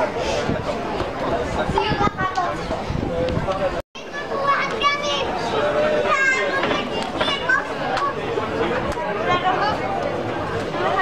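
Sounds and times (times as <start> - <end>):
people chattering: 0.0 - 11.0
children's voices: 1.4 - 3.0, 4.0 - 10.1, 10.7 - 11.0.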